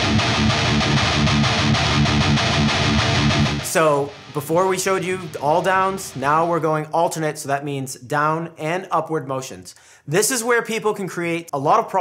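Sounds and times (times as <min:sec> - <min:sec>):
electric guitar picking fast notes: 0:00.0 - 0:06.7.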